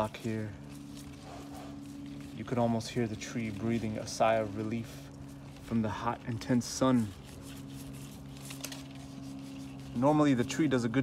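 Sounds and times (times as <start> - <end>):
leaves rustling: 0.0 - 11.0
low hum: 0.0 - 11.0
paintbrush bristles scratching: 0.0 - 11.0.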